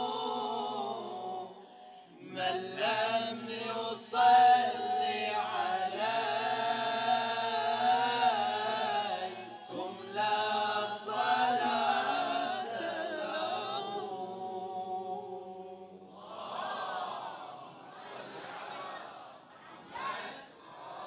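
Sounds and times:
men singing unaccompanied: 0.0s - 16.0s.

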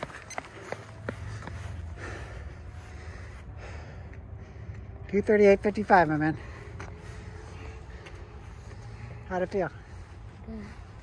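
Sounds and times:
faint hum: 0.0s - 5.6s.

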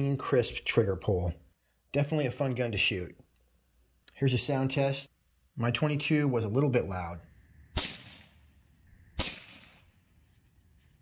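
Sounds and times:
air rifle shots: 7.7s - 10.0s.

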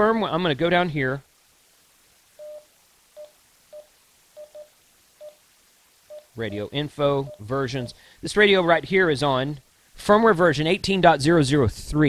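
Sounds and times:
radio keypad beeps: 2.4s - 2.6s, 3.2s - 5.4s, 6.1s - 8.0s.

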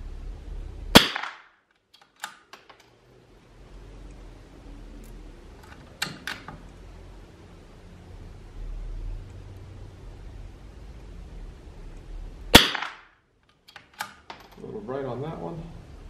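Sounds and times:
rifle shot: 0.9s - 1.6s, 12.5s - 13.2s
rifle bolt metallic clicks: 1.9s - 2.9s, 5.6s - 6.6s, 13.6s - 14.6s.

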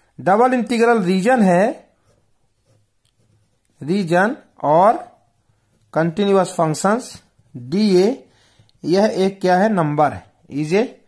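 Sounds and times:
pen writing on paper: 2.0s - 3.8s.

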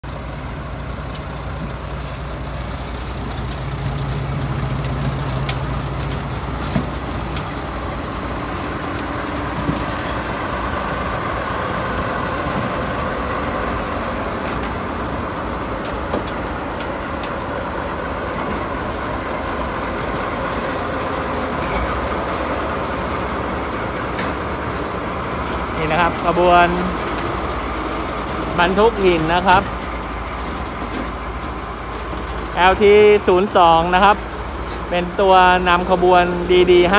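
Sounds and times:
diesel locomotive engines droning: 0.0s - 36.9s
train wheel clicks: 24.0s - 25.8s.

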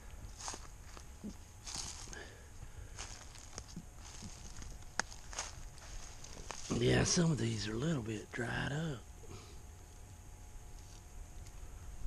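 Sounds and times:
footsteps crunching dry leaves: 0.3s - 7.5s, 10.7s - 11.1s.

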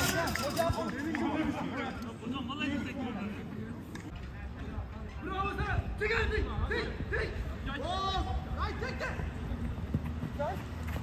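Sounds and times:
men calling and chattering: 0.0s - 11.0s.

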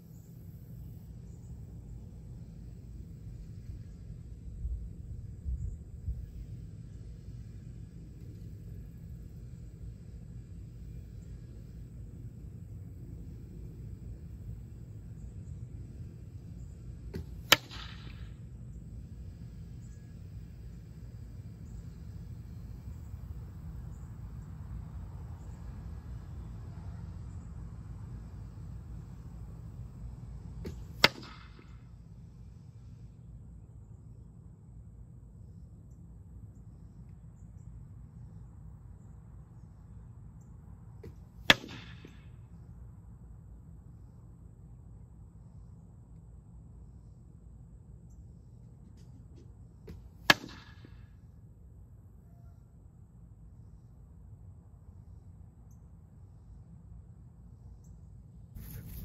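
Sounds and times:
low background hum: 0.0s - 59.0s
arrows hitting wooden target: 17.1s - 18.4s, 30.6s - 31.8s, 41.0s - 42.3s, 49.0s - 51.0s.

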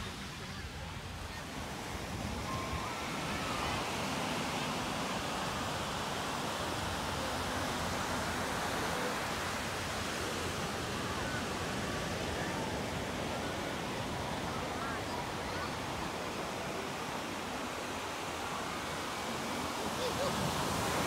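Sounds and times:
ocean surf breaking: 0.0s - 21.0s.

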